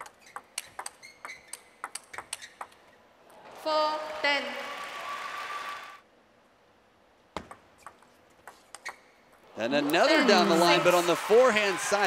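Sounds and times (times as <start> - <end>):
table tennis ball clicks: 0.2 - 2.8.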